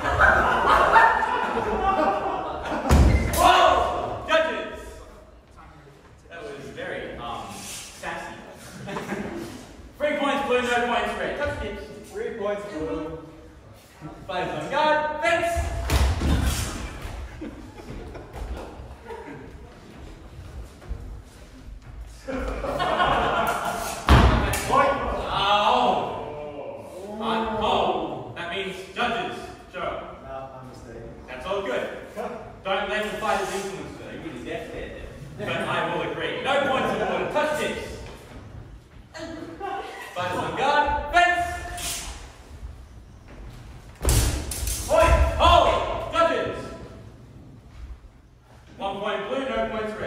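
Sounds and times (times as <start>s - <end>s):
people shouting in a hall: 0.0s - 4.9s, 39.6s - 42.5s.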